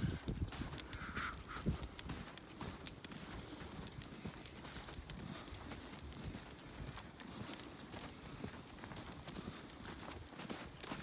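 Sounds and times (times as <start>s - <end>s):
footsteps on snow: 0.0s - 11.0s.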